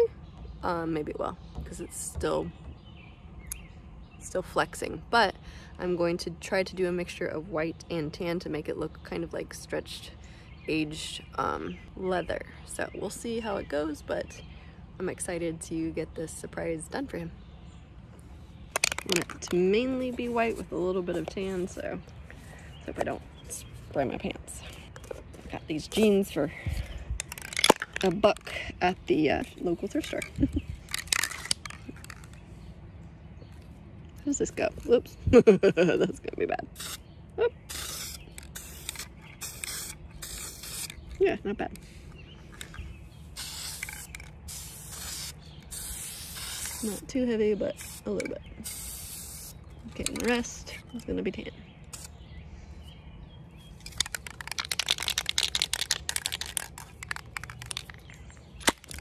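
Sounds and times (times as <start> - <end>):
plastic cap snapping off: 18.7 - 19.5, 53.8 - 59.0
spray can clicks and rattles: 18.7 - 19.6, 27.2 - 28.5, 30.1 - 32.4, 37.7 - 41.0, 43.4 - 47.0, 47.8 - 50.4, 51.9 - 52.1, 53.8 - 59.0.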